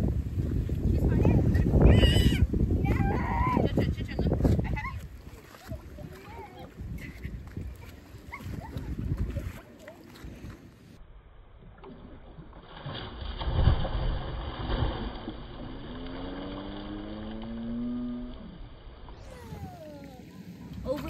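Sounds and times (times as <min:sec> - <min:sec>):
water splashing: 0:00.0 - 0:11.0, 0:11.6 - 0:21.0.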